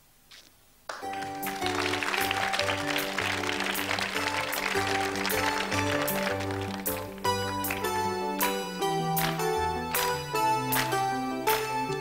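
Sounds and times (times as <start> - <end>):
steady beat: 1.0 - 12.0
synthesizer chords: 1.0 - 12.0.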